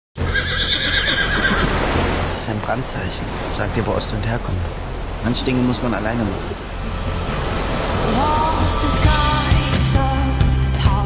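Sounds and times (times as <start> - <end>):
horse whinnying: 0.2 - 1.8.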